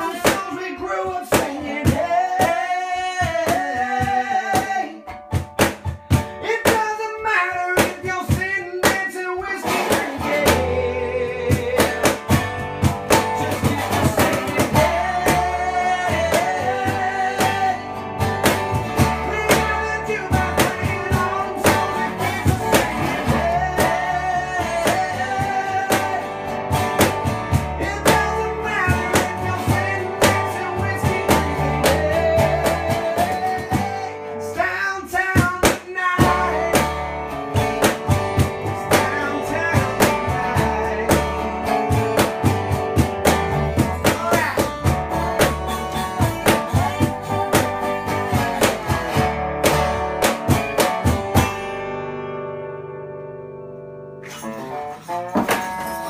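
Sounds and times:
man singing: 0.0s - 5.2s, 6.4s - 49.8s
resonator guitar strumming: 8.8s - 34.6s, 36.2s - 56.0s
plucked upright bass: 9.7s - 34.4s, 35.6s - 56.0s.

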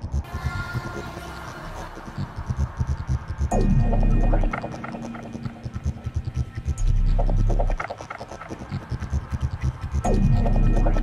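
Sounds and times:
throbbing bass pulse: 2.1s - 11.0s.

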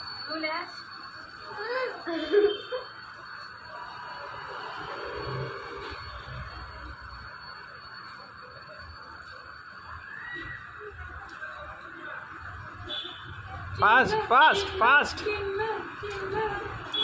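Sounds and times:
food stall ambience: 0.0s - 17.0s.

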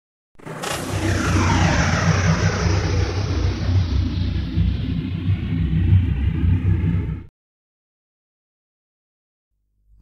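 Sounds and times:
deep steady rumble: 0.6s - 7.3s.

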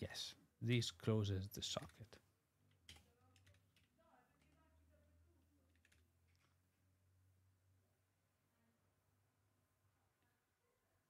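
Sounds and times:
keyboard typing: 2.7s - 4.7s, 5.7s - 6.6s.

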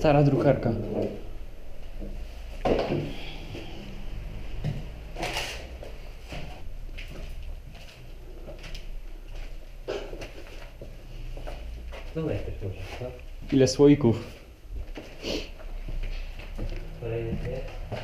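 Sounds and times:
knocks and scrapes of objects: 2.0s - 3.2s, 9.8s - 12.1s.

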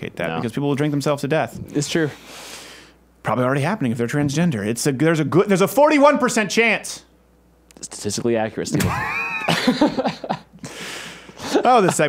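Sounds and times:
people laughing: 8.7s - 12.0s.

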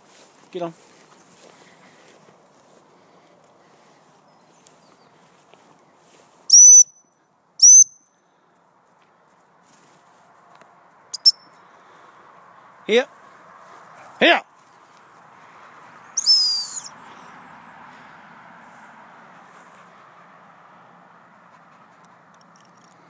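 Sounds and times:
high-pitched dog whistle blasts: 6.5s - 7.0s, 7.6s - 8.1s, 11.2s - 11.4s, 16.2s - 16.9s
short whistle pips: 6.5s - 8.1s, 11.1s - 11.5s, 16.2s - 16.9s.

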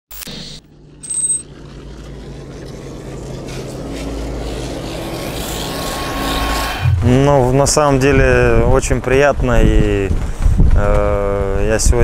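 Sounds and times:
rush of noise: 0.1s - 12.0s
low drone of held tones: 0.3s - 8.4s.

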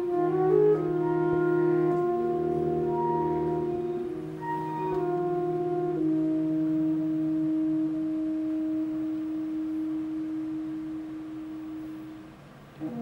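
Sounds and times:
saxophone quartet holding chord: 0.0s - 13.0s.

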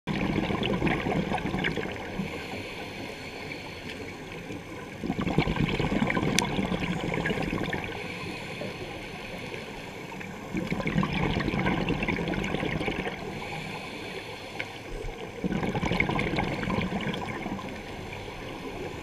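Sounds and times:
exhaled bubbles gurgling underwater: 0.1s - 19.0s
faint crackling clicks: 1.1s - 19.0s
diver inhaling: 2.2s - 4.3s, 7.8s - 10.2s, 13.2s - 15.0s.

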